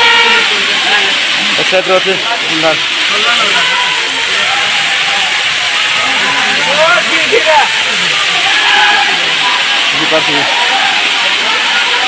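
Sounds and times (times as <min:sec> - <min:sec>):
waterfall hiss: 0:00.0 - 0:12.0
man talking: 0:00.5 - 0:03.6, 0:09.9 - 0:10.5.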